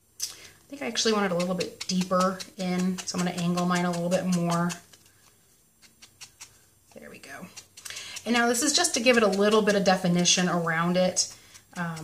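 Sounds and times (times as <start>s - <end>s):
sponge dabbing on card: 0.8s - 12.0s.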